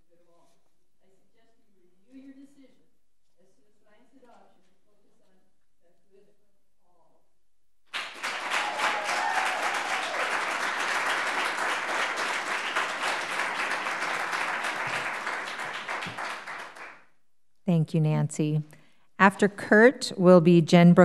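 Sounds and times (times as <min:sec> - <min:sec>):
audience applause: 0:07.9 - 0:17.0.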